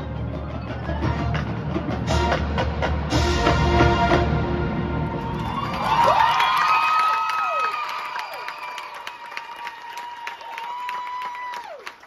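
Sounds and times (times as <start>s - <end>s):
crowd applauding and cheering: 5.0s - 12.0s
high cheers or whistles: 5.2s - 12.0s.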